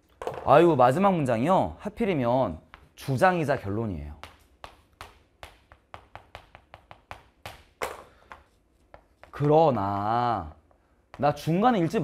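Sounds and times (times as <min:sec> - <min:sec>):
chalk tapping on chalkboard: 0:02.6 - 0:03.4, 0:04.0 - 0:10.0.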